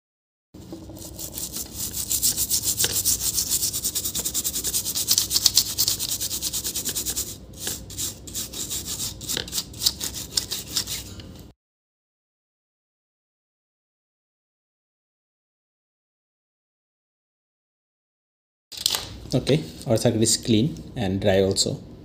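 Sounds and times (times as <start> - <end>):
toothbrush scrubbing circuit board: 0.9 - 11.1.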